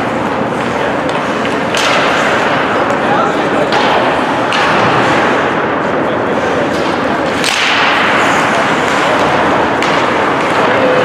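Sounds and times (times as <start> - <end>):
crowd and rink noise: 0.0 - 11.0
sharp cracks of hockey sticks: 0.3 - 3.0, 3.7 - 5.4, 6.7 - 11.0.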